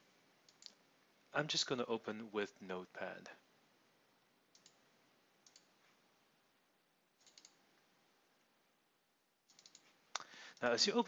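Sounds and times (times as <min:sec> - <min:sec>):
computer mouse clicks: 0:00.4 - 0:00.8, 0:04.5 - 0:04.8, 0:05.4 - 0:06.0, 0:07.2 - 0:07.6, 0:09.5 - 0:10.7.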